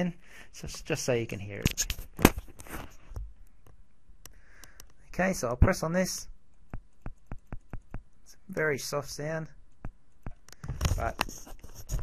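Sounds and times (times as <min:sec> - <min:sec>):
faint small clicks: 0:03.4 - 0:05.1.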